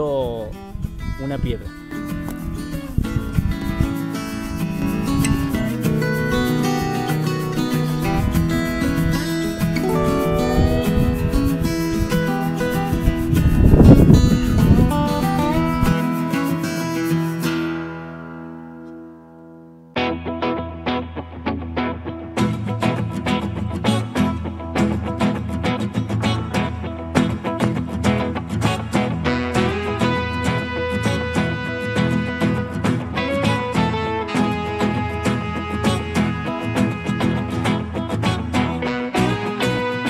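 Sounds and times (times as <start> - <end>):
acoustic guitar music: 0.0 - 40.0.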